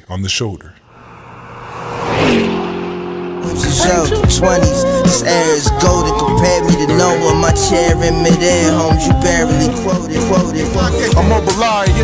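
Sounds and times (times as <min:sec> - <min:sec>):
whooshing noise swell: 0:00.9 - 0:11.6
falling pitch glide: 0:00.9 - 0:12.0
intro music: 0:00.9 - 0:12.0.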